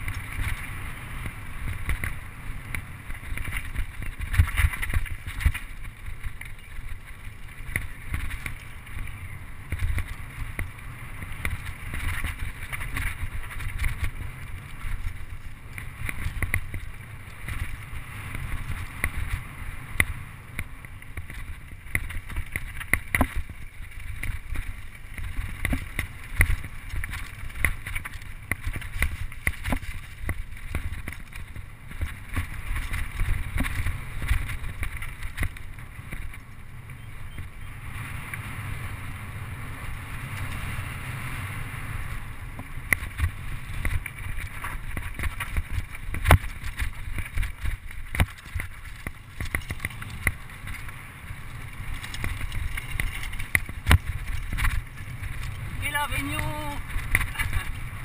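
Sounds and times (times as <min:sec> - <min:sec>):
bike rattling over bumps: 0:00.0 - 0:58.0.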